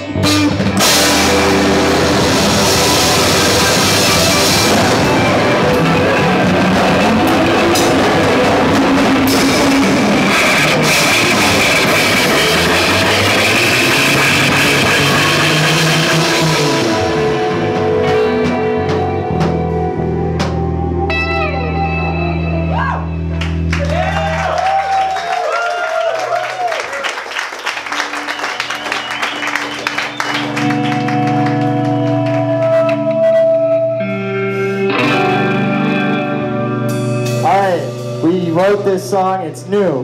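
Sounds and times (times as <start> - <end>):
electric guitar with effects: 0.0 - 24.9, 27.9 - 40.0
bass notes: 0.0 - 25.0, 27.9 - 40.0
drum kit: 0.0 - 25.1, 27.8 - 40.0
live rock band: 0.0 - 25.7, 26.8 - 40.0.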